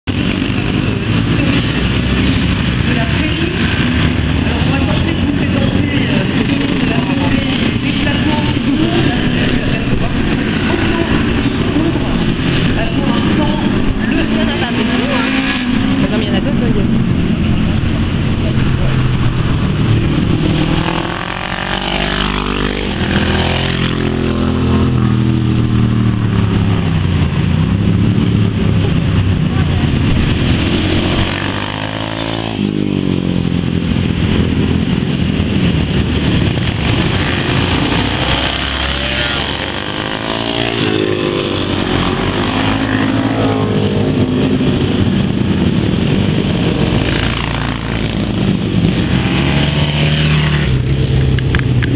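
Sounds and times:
racing motorcycle engines: 0.0 - 51.9.

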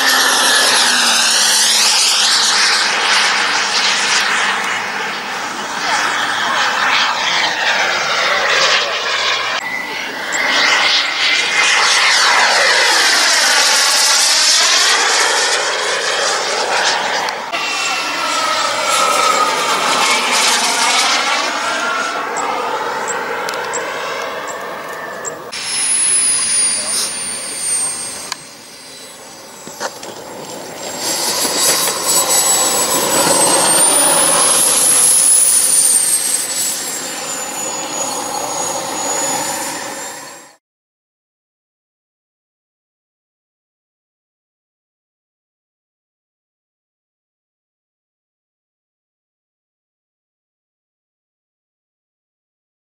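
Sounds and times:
high turbine whistle: 0.0 - 40.6
model jet turbine passing: 0.0 - 40.6.

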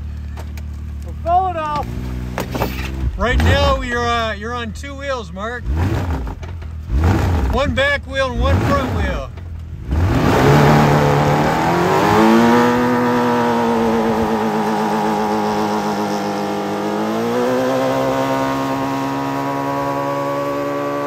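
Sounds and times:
engine at high revs: 1.6 - 4.1, 5.5 - 21.0.

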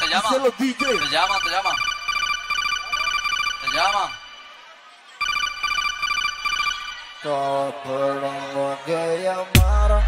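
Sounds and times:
trilling electronic phone ringtone: 0.0 - 7.4.

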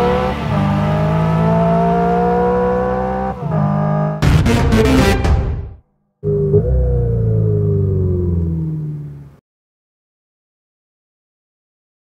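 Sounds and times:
low synthesized drone: 6.2 - 9.4
tone gliding downward: 6.2 - 9.4.

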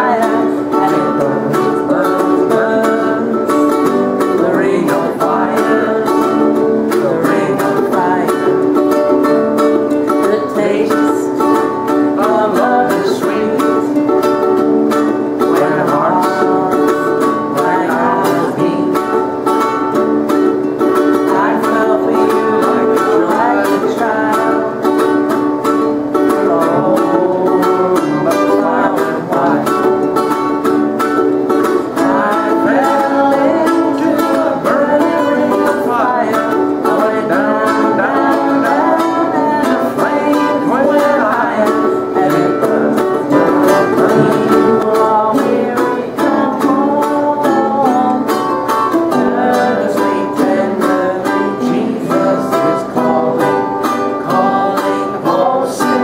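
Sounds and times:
people singing along: 0.0 - 20.2, 20.8 - 56.0
guitar and ukuleles strumming: 0.0 - 56.0.

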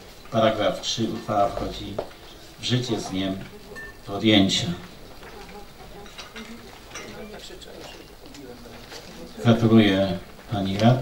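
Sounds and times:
faint voices murmuring: 0.0 - 11.0
rustling: 0.0 - 11.0.

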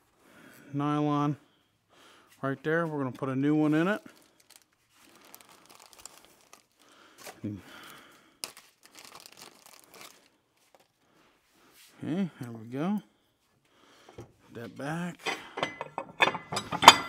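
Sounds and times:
plastic bag crinkling and tearing: 3.6 - 11.0
small clicks and rustles: 4.0 - 7.4.

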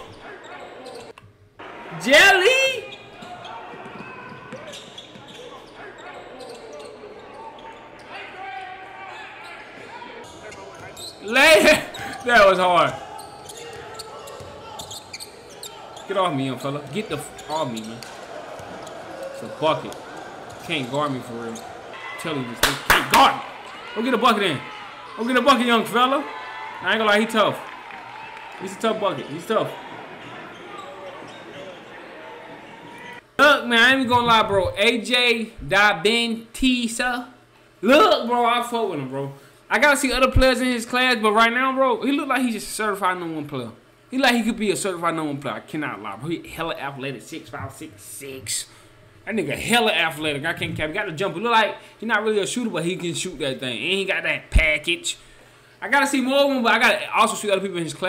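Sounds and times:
basketball bouncing: 13.2 - 15.6.

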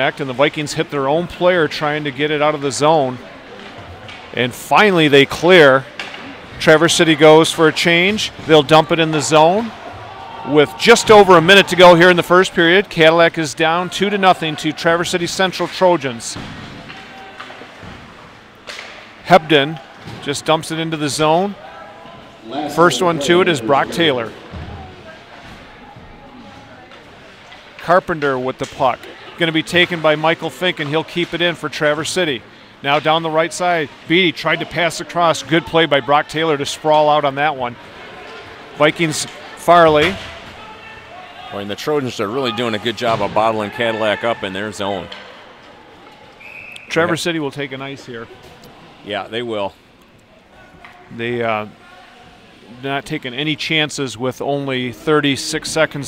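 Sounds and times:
faint crowd: 0.0 - 56.0
ice rink ambience: 0.0 - 56.0
referee's whistle: 46.4 - 47.2.

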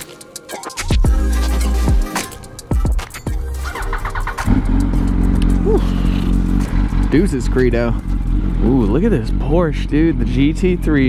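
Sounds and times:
motorcycle engine idling: 3.4 - 11.0.

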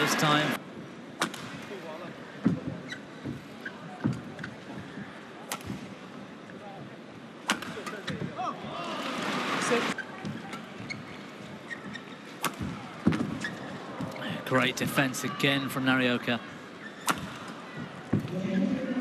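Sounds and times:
arena crowd noise: 0.0 - 19.0.

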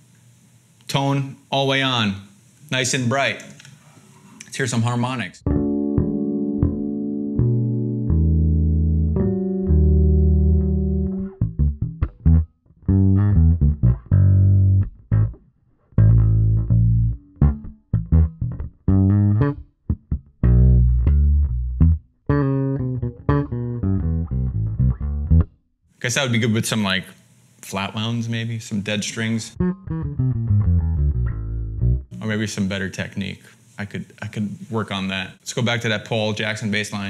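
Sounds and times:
electric bass ringing harmonics: 5.4 - 15.4, 16.0 - 25.6, 29.3 - 32.6
electric bass plucked notes: 5.4 - 25.6, 29.5 - 32.4.

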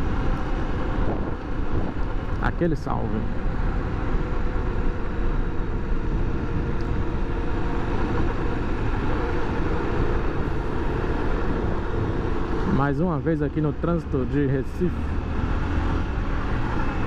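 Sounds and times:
wind rush on microphone: 0.0 - 12.8
motorcycle engine cruising: 0.0 - 17.0.

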